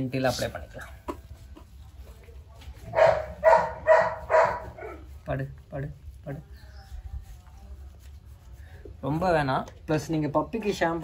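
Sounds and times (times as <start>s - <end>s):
puppy barking: 2.9s - 5.0s.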